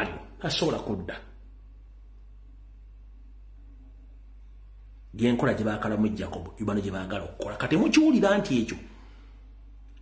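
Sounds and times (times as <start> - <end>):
man speaking: 0.0 - 1.4, 5.1 - 8.9
steady low hum: 0.0 - 10.0.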